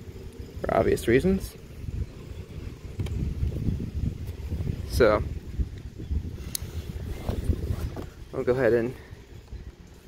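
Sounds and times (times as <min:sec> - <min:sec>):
wind buffeting microphone: 0:00.0 - 0:10.0
faint click: 0:06.5 - 0:06.7.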